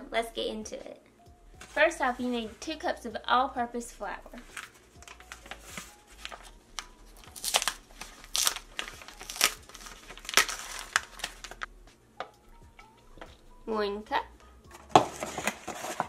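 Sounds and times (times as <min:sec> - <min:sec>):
paper bag crinkling: 0:04.4 - 0:11.7, 0:14.9 - 0:16.0.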